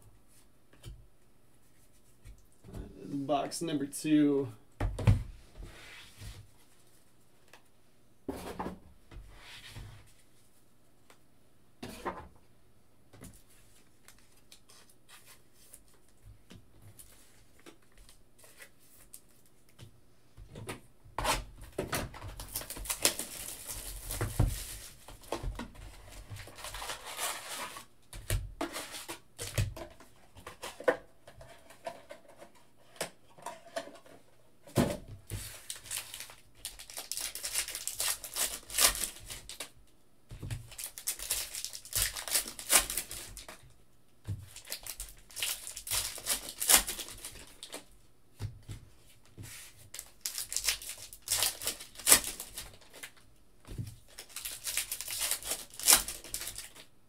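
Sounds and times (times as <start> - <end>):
foil packs crinkling: 22.1 - 25.3, 26.1 - 27.9, 35.4 - 39.8, 40.6 - 43.6, 44.5 - 47.9, 49.9 - 53.2, 54.0 - 56.9.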